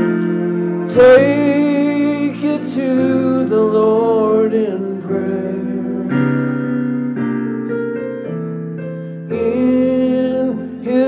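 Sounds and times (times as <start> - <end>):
keyboard piano chords: 0.0 - 11.0.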